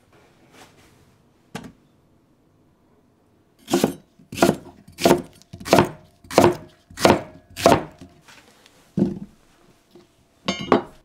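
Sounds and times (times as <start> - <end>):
knife chopping on wooden board: 3.6 - 8.1.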